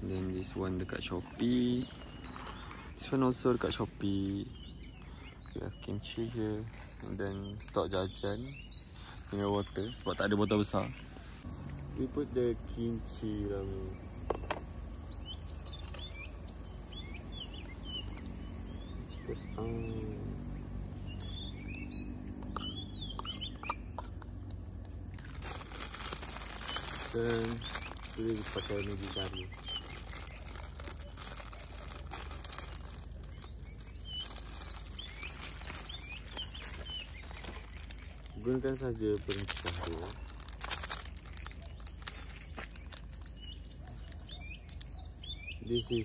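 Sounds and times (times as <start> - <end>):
birds chirping: 0.0 - 46.0
plastic packet crinkling: 25.1 - 44.9.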